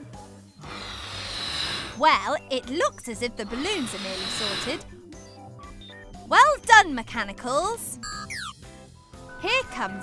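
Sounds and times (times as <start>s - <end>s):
soft background music: 0.0s - 10.0s
gas hissing from cylinder: 0.6s - 2.0s, 3.5s - 4.8s.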